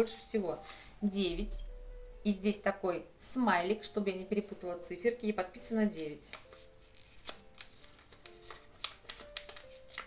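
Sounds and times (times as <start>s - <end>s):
quiet background music: 0.0s - 10.0s
paper crackling and rustling: 6.3s - 10.0s.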